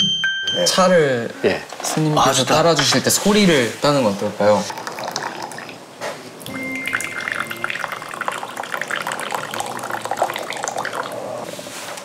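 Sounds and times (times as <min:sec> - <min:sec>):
tea pouring into a teacup: 0:04.5 - 0:05.8, 0:06.4 - 0:11.5.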